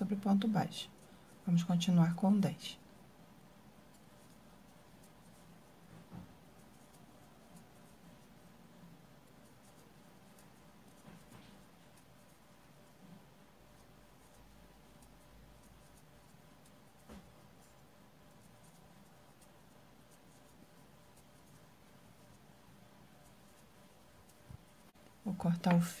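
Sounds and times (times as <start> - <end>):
crochet hook ticks and scratches: 6.6 - 13.2, 13.8 - 22.4.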